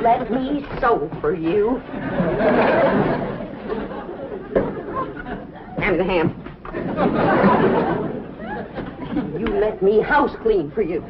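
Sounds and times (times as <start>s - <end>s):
audience laughter: 1.8s - 5.7s, 6.7s - 9.5s.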